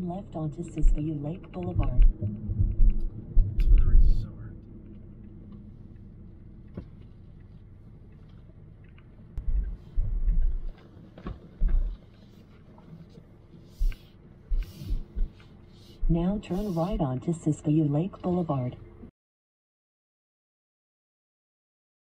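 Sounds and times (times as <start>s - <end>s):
low rumble in car cabin: 0.0s - 19.1s.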